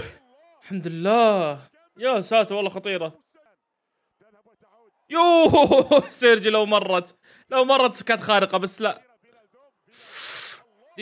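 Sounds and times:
short hiss: 10.0 - 10.6.

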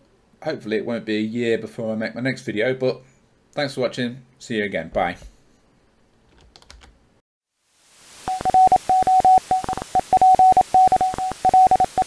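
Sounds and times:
background hiss: 6.9 - 12.0
morse code beeping: 8.3 - 12.0.

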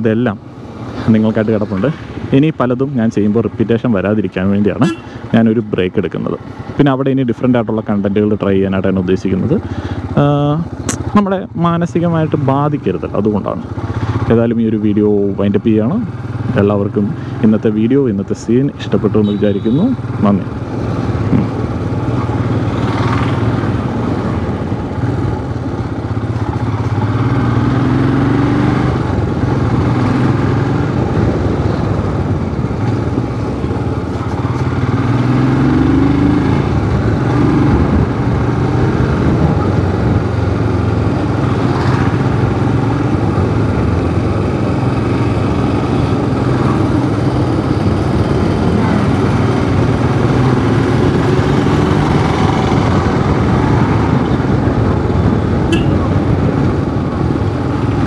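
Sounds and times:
motorcycle engine running: 4.8 - 6.8, 18.8 - 58.0
wind rush on microphone: 20.5 - 27.7, 28.6 - 35.8, 36.6 - 58.0.

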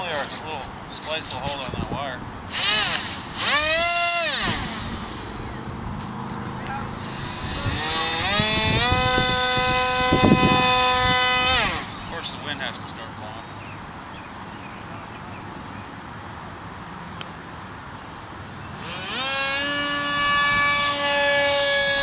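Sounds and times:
electric motor whine: 2.5 - 12.2, 18.7 - 22.0.

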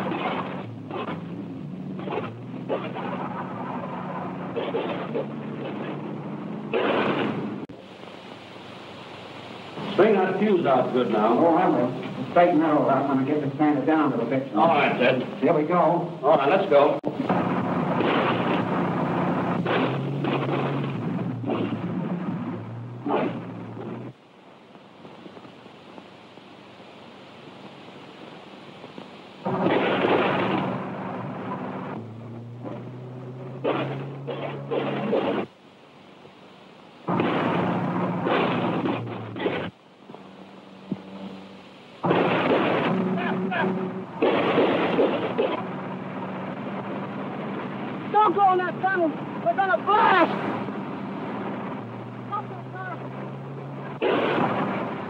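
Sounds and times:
low droning tones: 0.0 - 7.7, 9.5 - 24.2, 29.3 - 35.5, 37.0 - 55.0
noisy rush: 0.0 - 55.0.

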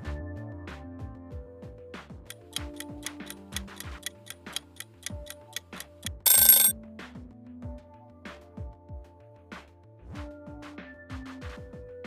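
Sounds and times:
background music: 0.0 - 12.0
clock ticking: 2.3 - 6.7
loud alarm-like ring: 2.3 - 6.7.

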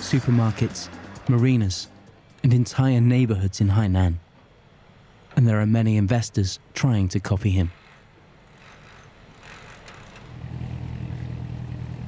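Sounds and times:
boat engine humming: 0.0 - 3.4, 7.5 - 12.0.

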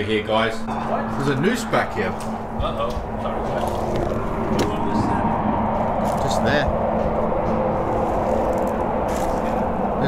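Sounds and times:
low rumbling noise: 0.0 - 10.0.

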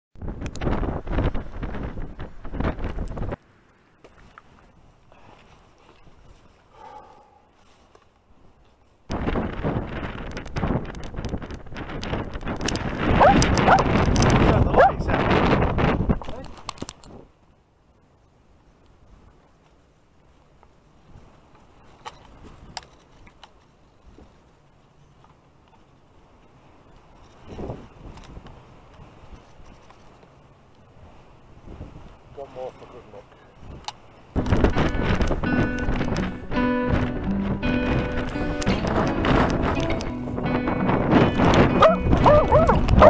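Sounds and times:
wind on microphone: 0.2 - 3.4, 9.1 - 17.3, 27.2 - 30.0, 31.0 - 32.3, 33.6 - 43.0
camera rubbing and knocking: 9.6 - 14.6
dog whining: 41.8 - 42.9.

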